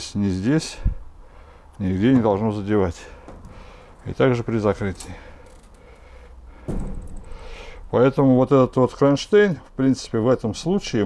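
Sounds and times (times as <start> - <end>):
door rustling and scraping: 1.9 - 8.0.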